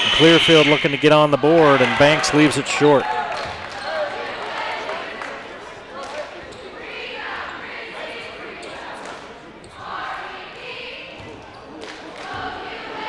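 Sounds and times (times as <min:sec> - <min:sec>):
crowd voices echoing: 0:00.0 - 0:13.0.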